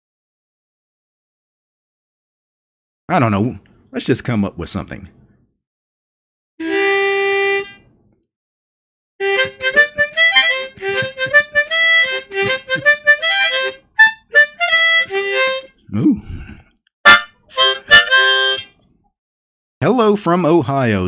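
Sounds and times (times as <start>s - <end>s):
harmonica playing: 6.6s - 7.8s, 9.2s - 15.8s, 17.0s - 18.8s.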